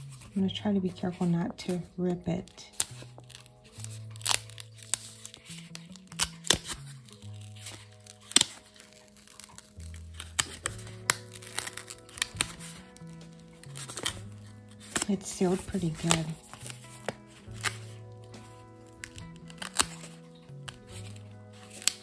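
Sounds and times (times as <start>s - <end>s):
paper crinkling and tearing: 0.0s - 22.0s
soft background music: 0.0s - 22.0s.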